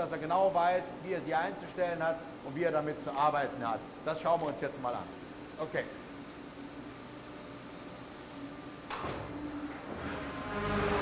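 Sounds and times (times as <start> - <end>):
machine humming and whirring: 0.0 - 11.0.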